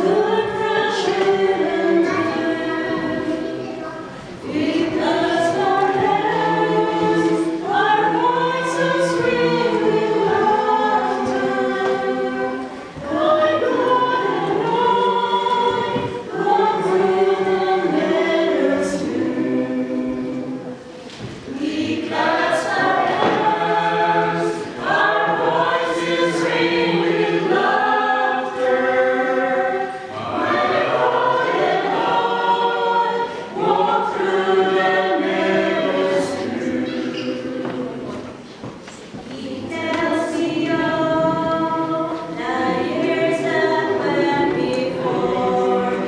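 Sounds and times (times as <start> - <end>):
choir singing a hymn: 0.0 - 46.0.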